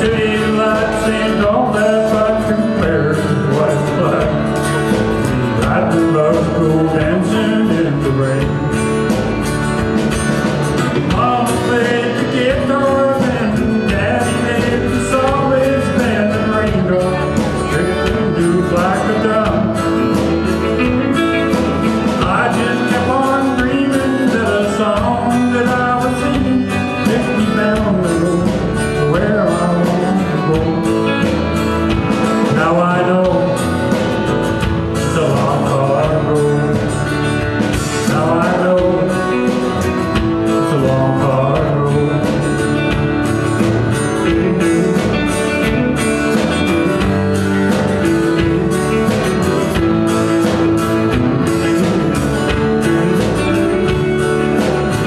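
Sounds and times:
live country band playing: 0.0 - 55.0.

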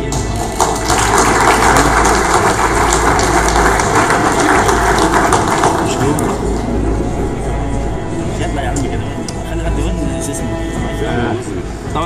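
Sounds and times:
crowd applauding: 0.0 - 8.0.

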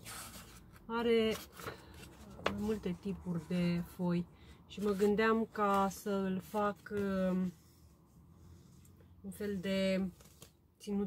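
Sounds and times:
notebook pages rustling: 0.0 - 3.6, 4.8 - 7.8, 9.7 - 10.6.

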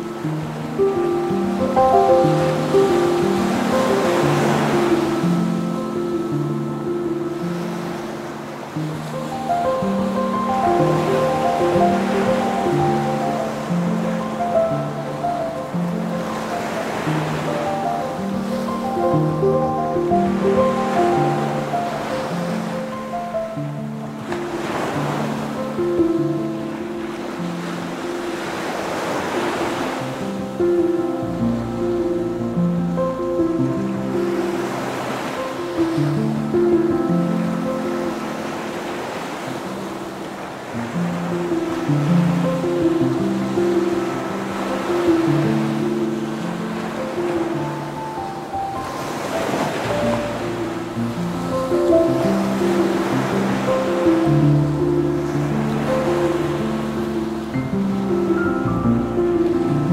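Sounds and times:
ocean waves washing: 0.0 - 59.9
soft instrumental music: 0.0 - 59.9.

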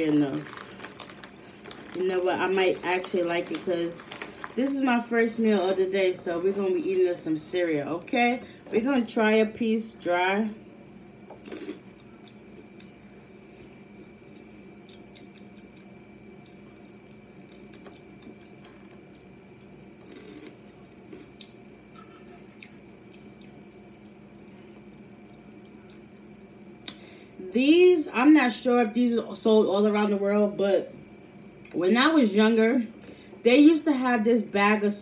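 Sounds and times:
dry cereal being chewed: 0.0 - 6.6, 11.4 - 26.3.

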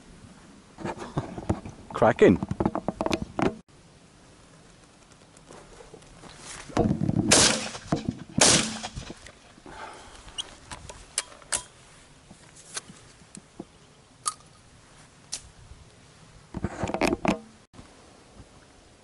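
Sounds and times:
shotgun shots: 7.3 - 9.0.

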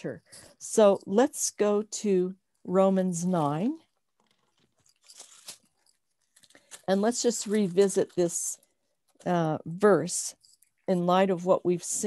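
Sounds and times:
handling crackles and clicks: 4.0 - 8.2.

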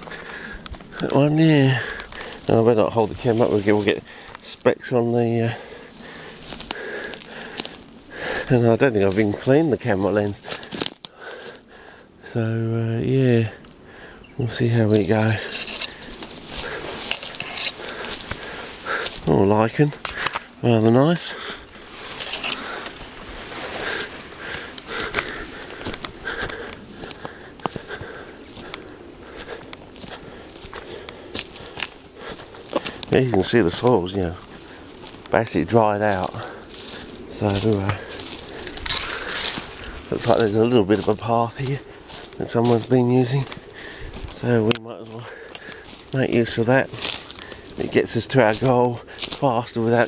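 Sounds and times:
brushing past branches and grass: 0.0 - 11.6, 14.4 - 50.0
footsteps through dry scrub: 0.0 - 12.4, 13.0 - 50.0
twigs and leaves crackling: 0.0 - 50.0.

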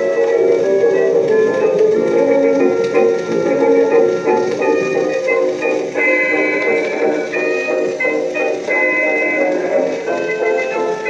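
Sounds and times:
old dance orchestra recording: 0.0 - 11.0.

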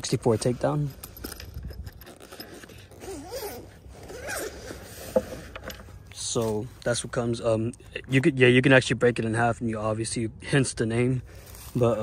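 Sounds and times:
zipper being pulled open: 1.2 - 5.9.

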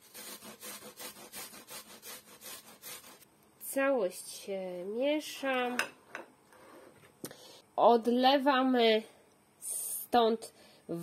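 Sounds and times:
onion grated on metal grater: 0.0 - 3.2.

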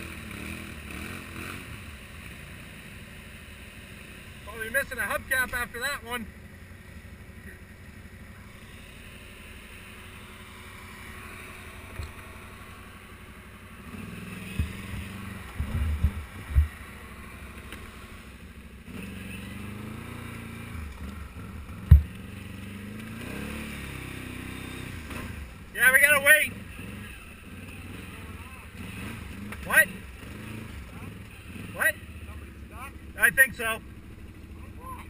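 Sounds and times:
atv engine running: 0.0 - 35.0.

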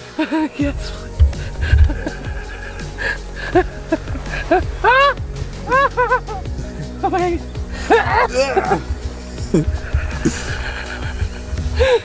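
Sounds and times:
rising and falling melody: 0.0 - 12.0
sustained low tones: 0.6 - 12.0.

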